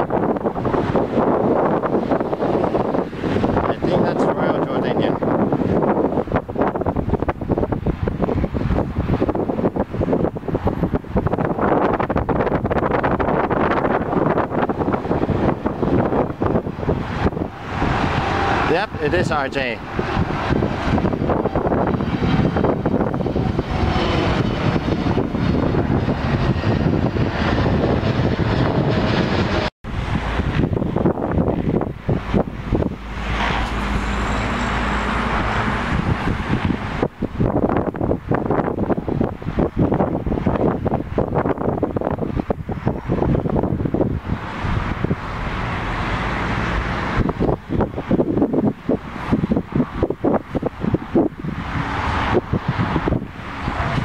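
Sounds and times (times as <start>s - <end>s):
jet airliner engines: 0.0s - 54.0s
wind buffeting microphone: 0.0s - 54.0s.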